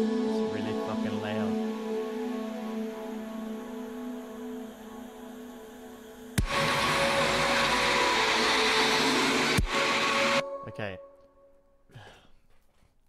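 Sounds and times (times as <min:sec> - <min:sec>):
sustained synth pad chord: 0:00.0 - 0:11.1
noisy hiss-like synth wash: 0:00.1 - 0:10.4.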